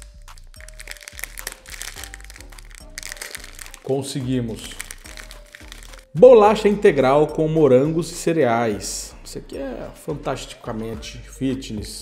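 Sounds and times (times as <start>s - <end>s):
plastic wrapper crinkling: 0.0s - 6.2s
background music: 0.0s - 12.0s.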